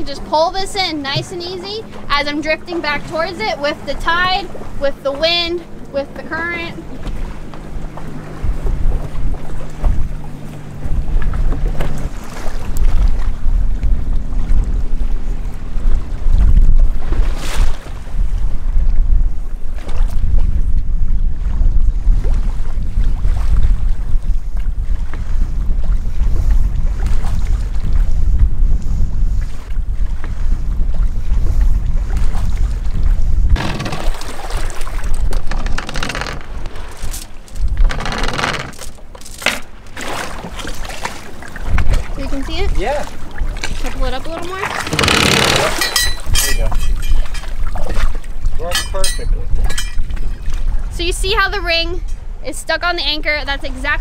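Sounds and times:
strong wind buffeting microphone: 0.0s - 38.8s
waves slapping hull: 0.0s - 54.0s
anchor chain clinking: 35.3s - 39.7s, 44.9s - 47.6s, 48.7s - 50.1s.

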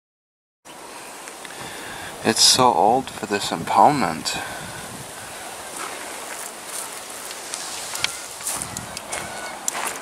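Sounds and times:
outdoor hiss: 0.7s - 10.0s
footsteps crunching dry grass: 4.9s - 10.0s.

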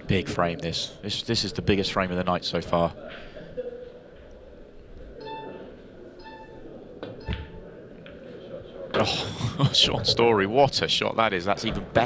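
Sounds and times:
low room murmur: 0.0s - 12.0s.

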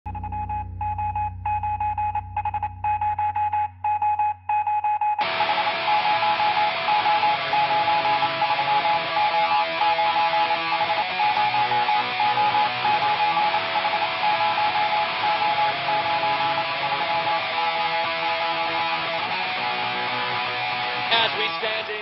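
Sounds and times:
low drone: 0.1s - 3.8s
pulsing electronic tone: 0.1s - 20.3s
band music with guitar: 5.2s - 22.0s.

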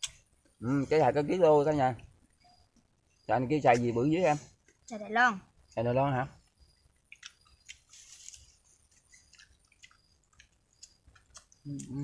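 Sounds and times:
people chewing fruit: 6.4s - 12.0s.

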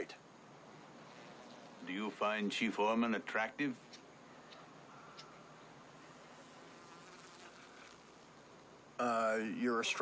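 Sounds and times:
light insect buzz: 0.0s - 10.0s.

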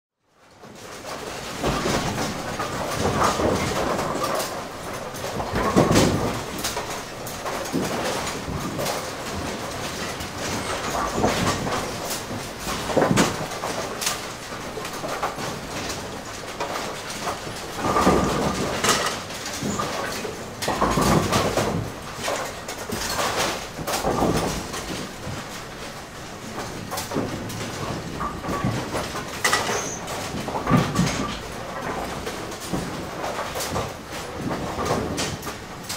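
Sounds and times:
pinsetter machinery rattling: 1.0s - 35.9s.

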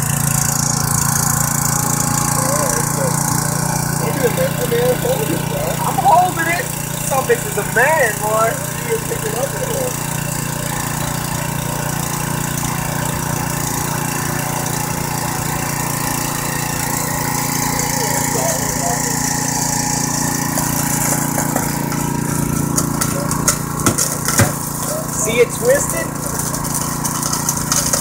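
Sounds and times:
hydraulic power unit running: 0.0s - 28.0s
sharp cracks: 0.0s - 28.0s.

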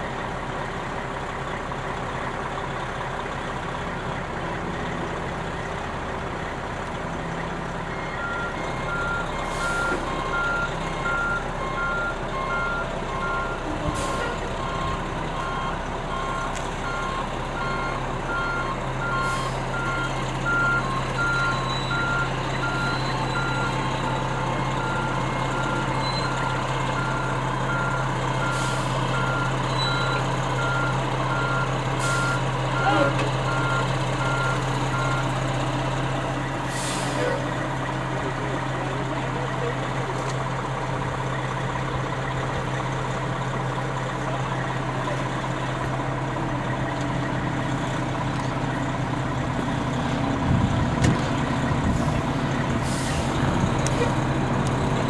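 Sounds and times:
diesel engine running: 0.0s - 55.0s
reverse alarm beeping: 7.8s - 35.4s.

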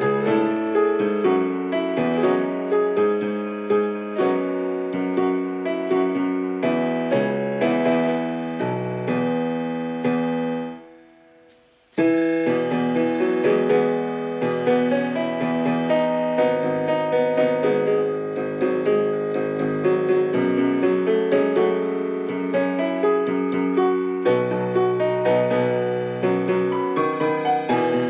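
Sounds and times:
grand piano playing: 0.0s - 28.0s.

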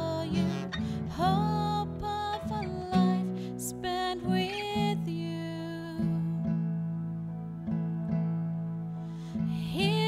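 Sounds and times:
acoustic guitar strummed: 0.0s - 5.0s
held low keyboard chord: 0.0s - 10.0s.

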